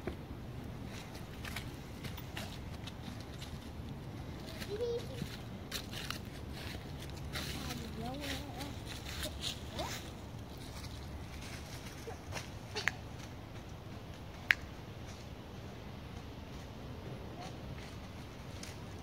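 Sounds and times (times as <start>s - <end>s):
footsteps crunching through dry leaves: 0.8s - 13.4s.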